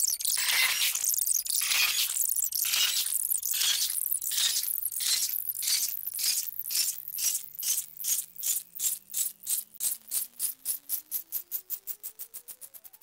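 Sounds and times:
sharp ticks speeding up: 2.2 - 13.0.

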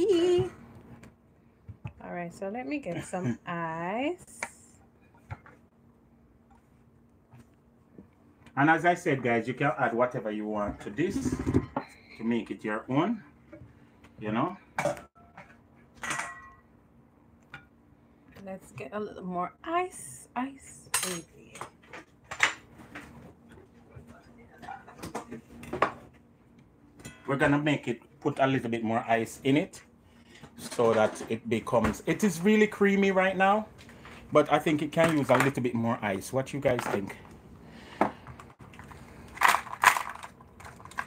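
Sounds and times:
faint steady hum: 0.0 - 41.0
dishes and utensils clinking: 14.8 - 16.7.

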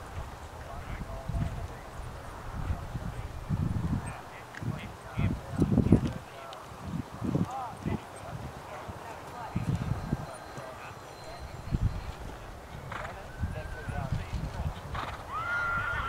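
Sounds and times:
horse whinnying: 15.0 - 16.0.

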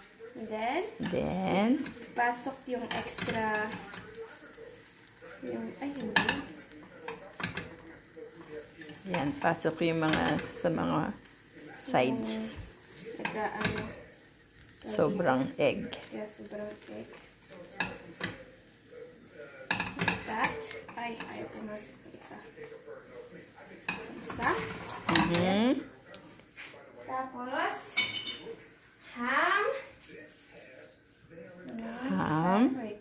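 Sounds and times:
egg and bread frying in pan: 0.0 - 26.1.

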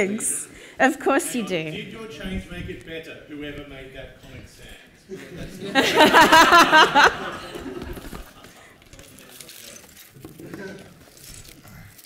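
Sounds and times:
person laughing loudly: 5.8 - 8.2.

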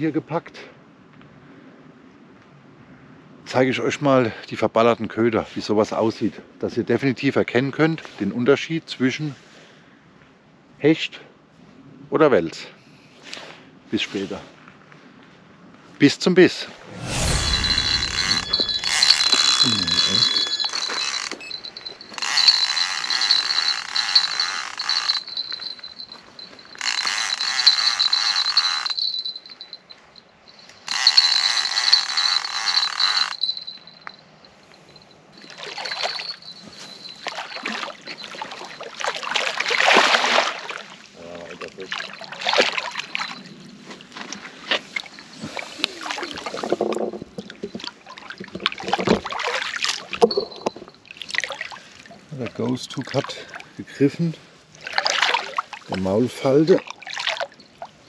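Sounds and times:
bite alarm high tone: 16.9 - 26.0.

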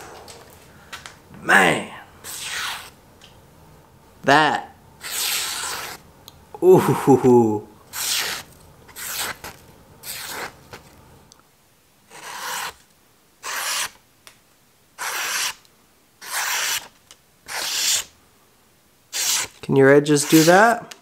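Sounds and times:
knife slicing paper: 2.3 - 2.9, 5.0 - 6.0, 7.9 - 10.8, 12.1 - 12.8, 13.4 - 14.0, 15.0 - 15.6, 16.2 - 16.9, 17.5 - 18.1, 19.1 - 19.6, 20.2 - 20.8.

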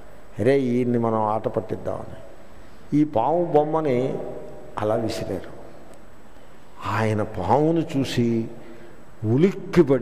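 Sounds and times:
man lecturing: 0.4 - 2.3, 2.9 - 5.8, 6.8 - 10.0.

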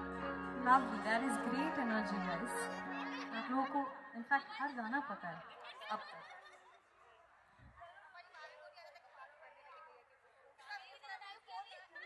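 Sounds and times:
held musical chord: 0.0 - 4.3.

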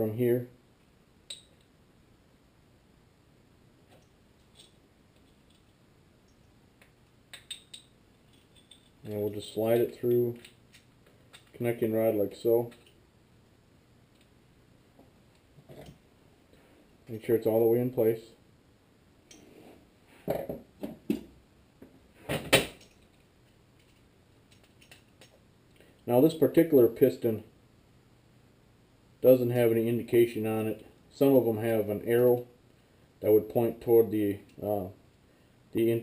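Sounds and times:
light metal parts clicking: 3.9 - 9.1, 10.3 - 11.6, 12.6 - 13.0, 22.8 - 26.0.

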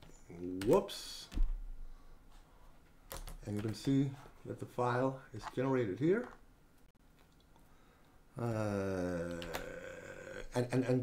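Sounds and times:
man saying uhhh: 8.4 - 11.0.

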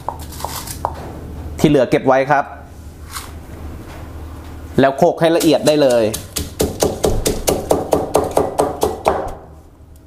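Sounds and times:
stone pestle pounding in mortar: 5.3 - 9.5.

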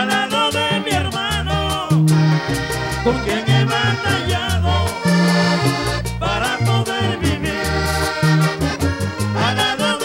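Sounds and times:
bass notes: 0.0 - 10.0
button accordion melody: 0.0 - 10.0
percussion beat: 0.0 - 10.0.

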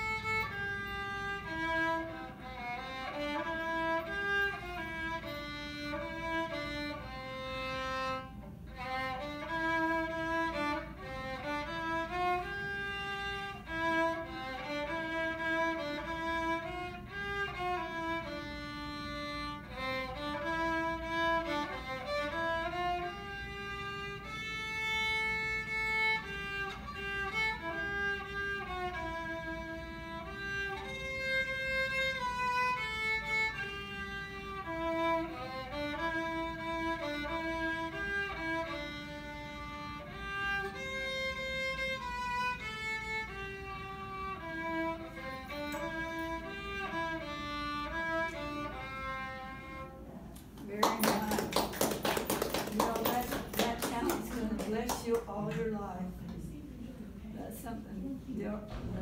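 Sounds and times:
solo violin melody: 0.0 - 50.2.

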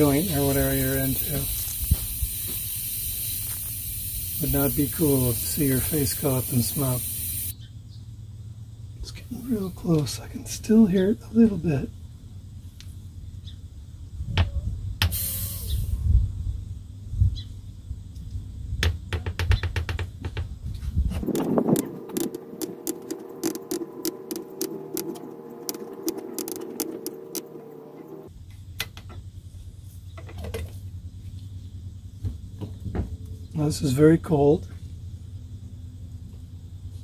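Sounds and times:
hiss of propellant escaping: 0.0 - 7.5, 15.1 - 16.1.

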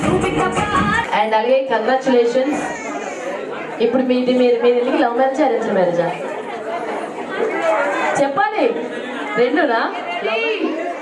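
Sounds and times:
quiet chatter: 0.9 - 11.0.

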